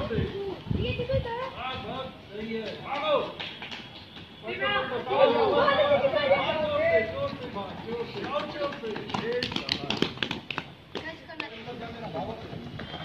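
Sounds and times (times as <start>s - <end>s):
voices calling out: 0.0s - 9.9s
children's running footsteps: 0.0s - 13.0s.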